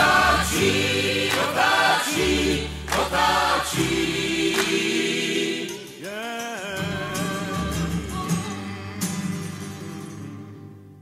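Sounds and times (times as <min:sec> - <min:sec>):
voices singing held notes: 0:00.0 - 0:09.7
strummed acoustic guitars: 0:00.0 - 0:11.0
double bass: 0:06.8 - 0:11.0.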